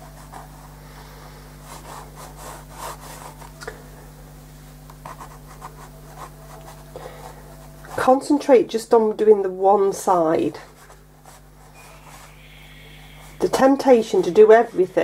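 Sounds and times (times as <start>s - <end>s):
pencil scratching on paper: 0.0s - 0.8s, 1.6s - 3.5s, 5.0s - 8.4s, 10.0s - 15.0s
low hum: 11.0s - 15.0s.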